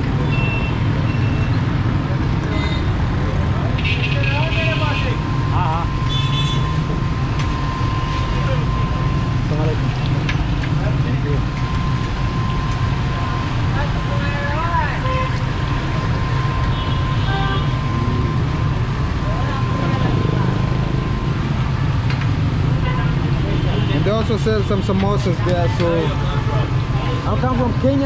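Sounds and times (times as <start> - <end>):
street traffic rumble: 0.0 - 28.0.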